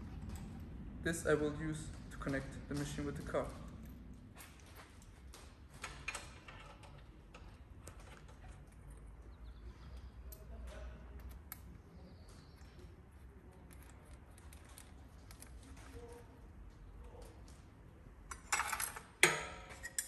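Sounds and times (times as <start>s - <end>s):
low steady hum: 0.0s - 20.0s.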